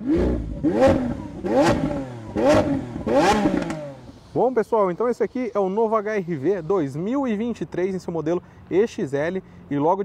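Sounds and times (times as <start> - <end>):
engine revving in blips: 0.0 - 4.5.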